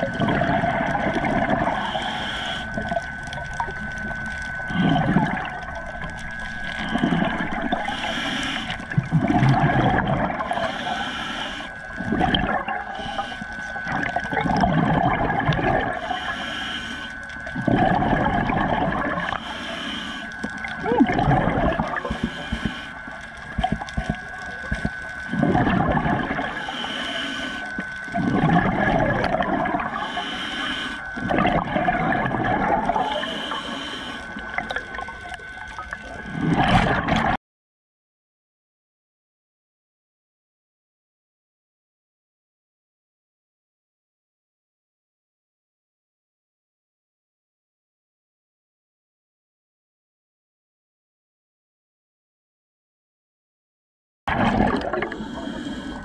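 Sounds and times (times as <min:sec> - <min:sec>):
exhaled bubbles rushing: 0:00.0 - 0:11.1, 0:11.9 - 0:16.2, 0:17.4 - 0:19.5, 0:20.3 - 0:26.9, 0:27.6 - 0:30.2, 0:31.1 - 0:33.6, 0:34.3 - 0:37.4, 0:54.3 - 0:55.6
regulator inhale hiss: 0:00.2 - 0:03.6, 0:06.1 - 0:09.0, 0:10.4 - 0:12.1, 0:12.8 - 0:13.9, 0:15.9 - 0:17.8, 0:19.1 - 0:20.8, 0:21.9 - 0:35.9, 0:55.0 - 0:56.0.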